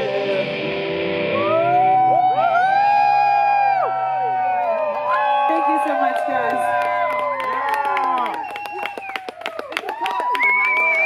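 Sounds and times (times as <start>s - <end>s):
electric guitars bending long notes: 0.0s - 4.6s.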